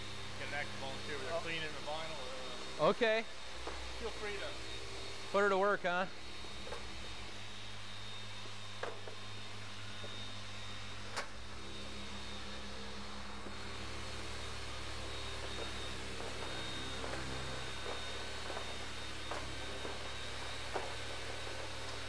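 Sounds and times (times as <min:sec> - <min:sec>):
orbital polishers motor hum: 0:00.0 - 0:22.0.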